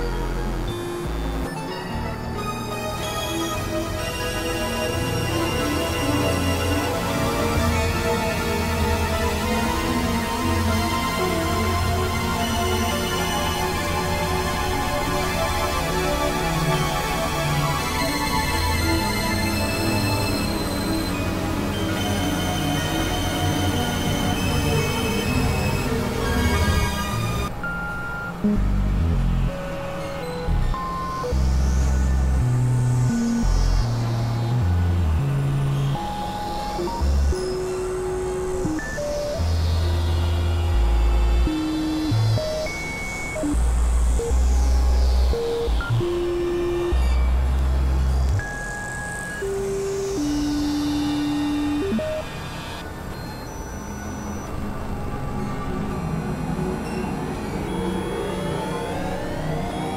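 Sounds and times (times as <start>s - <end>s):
experimental synthesizer music: 0.0s - 59.9s.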